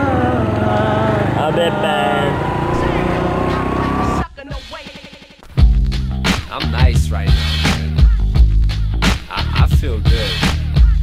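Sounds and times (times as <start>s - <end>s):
long rising tone: 0.0s - 4.2s.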